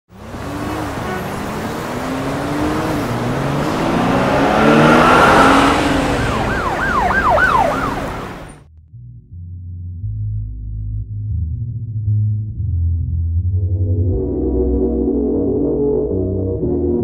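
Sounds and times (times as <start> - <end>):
vehicle rushing by: 0.1 - 8.6
police siren wailing: 0.2 - 8.6.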